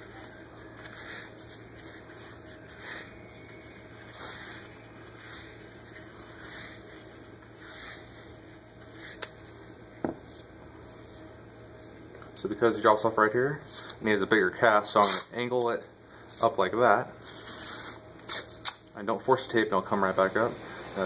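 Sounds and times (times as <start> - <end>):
soft foam wrap rustles: 0.0 - 12.1, 14.8 - 18.8
low steady hum: 0.0 - 21.0.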